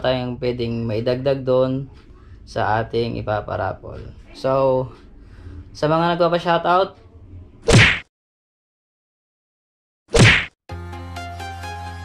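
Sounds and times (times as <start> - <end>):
sharp whack sound effect: 7.6 - 8.1, 10.1 - 10.6
background music: 10.7 - 12.0.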